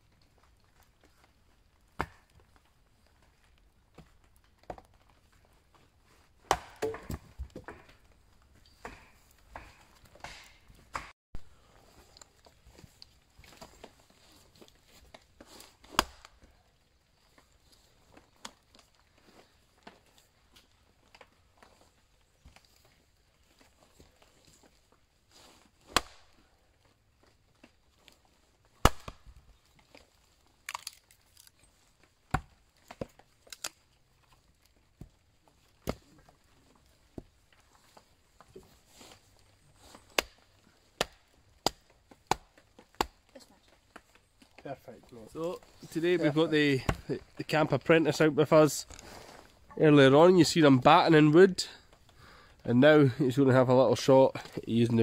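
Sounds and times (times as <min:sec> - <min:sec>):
hatchet splitting log: 0:06.4 - 0:08.0, 0:08.8 - 0:11.1, 0:15.8 - 0:16.5, 0:25.8 - 0:26.4, 0:28.8 - 0:29.4, 0:32.3 - 0:33.8, 0:40.0 - 0:43.3.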